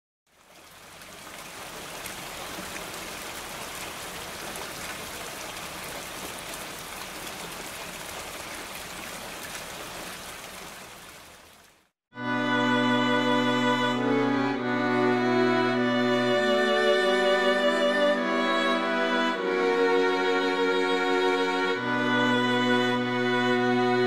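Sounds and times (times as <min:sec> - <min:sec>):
steady rain falling: 0:00.3 - 0:11.9.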